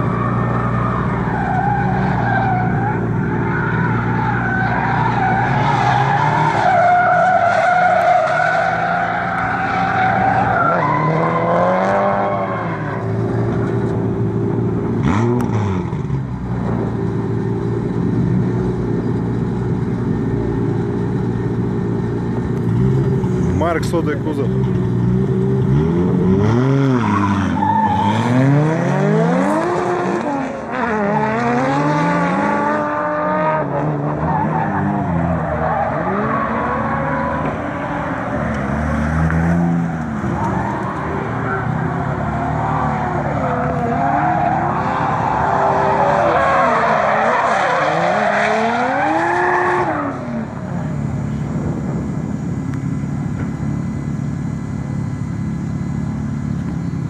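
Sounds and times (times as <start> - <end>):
car engines revving: 0.0 - 57.0.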